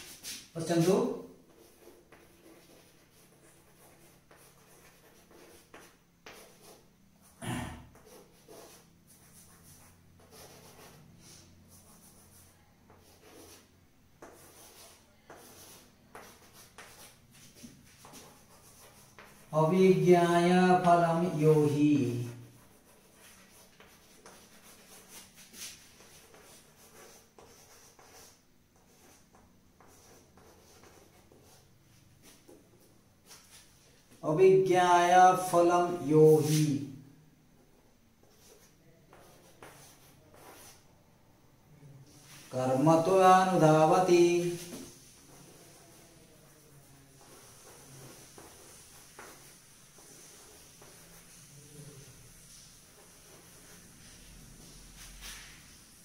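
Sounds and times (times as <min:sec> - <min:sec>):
chalk tapping: 0:00.0 - 0:06.9, 0:07.9 - 0:20.1, 0:20.8 - 0:34.2, 0:36.4 - 0:36.8, 0:37.6 - 0:40.8, 0:42.2 - 0:46.5, 0:47.1 - 0:56.0
chalk scratching on chalkboard: 0:00.0 - 0:37.0, 0:37.6 - 0:40.9, 0:42.1 - 0:56.0.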